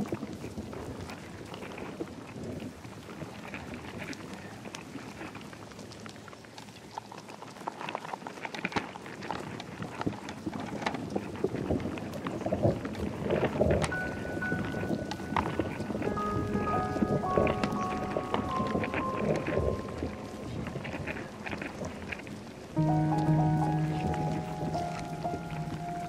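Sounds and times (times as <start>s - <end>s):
scattered crackles: 0.0s - 26.0s
rain-like electronic hiss: 8.9s - 26.0s
high steady tone: 13.9s - 22.1s, 22.8s - 26.0s.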